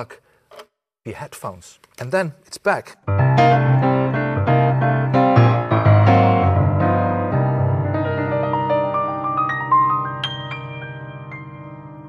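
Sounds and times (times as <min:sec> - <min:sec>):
grand piano chords: 0:03.1 - 0:12.0.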